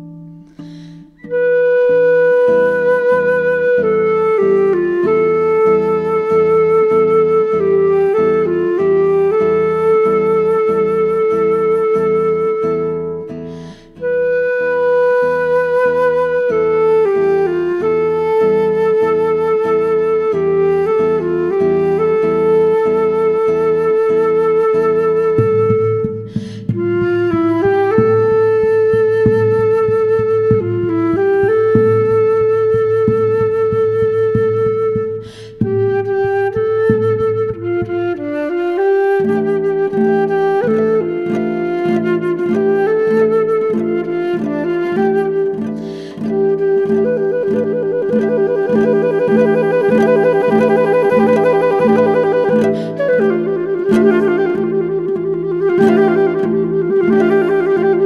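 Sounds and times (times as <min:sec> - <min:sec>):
flute melody: 0:00.0 - 0:58.0
guitar chords: 0:00.0 - 0:58.0.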